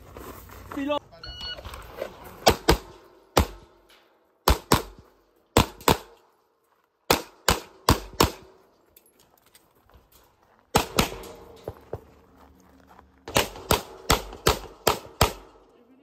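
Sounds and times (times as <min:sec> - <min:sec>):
shot timer beep: 0:01.2 - 0:01.7
pistol shots: 0:02.4 - 0:03.8, 0:04.4 - 0:05.0, 0:05.6 - 0:06.2, 0:07.1 - 0:08.6, 0:10.7 - 0:11.6, 0:13.3 - 0:15.6.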